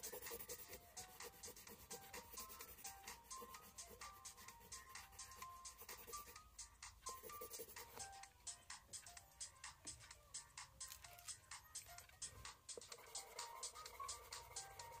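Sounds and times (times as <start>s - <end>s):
pencil scratching on paper: 0.0s - 6.4s, 7.1s - 8.2s, 12.7s - 15.0s
quiet background music: 0.0s - 15.0s.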